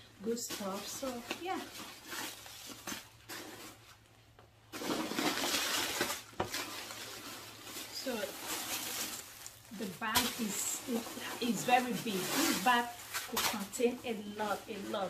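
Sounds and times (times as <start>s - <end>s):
plastic wrap crinkling: 0.0s - 15.0s.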